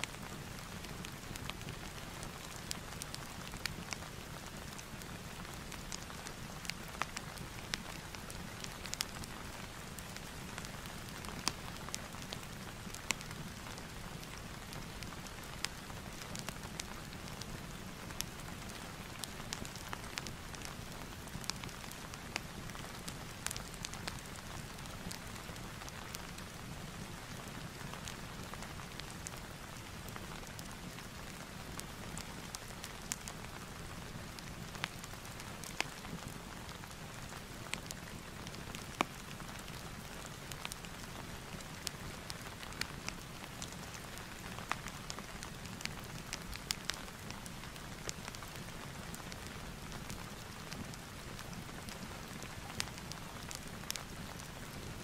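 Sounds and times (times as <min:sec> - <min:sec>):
fireplace crackles: 0:00.0 - 0:55.0
steady rain: 0:00.0 - 0:55.0.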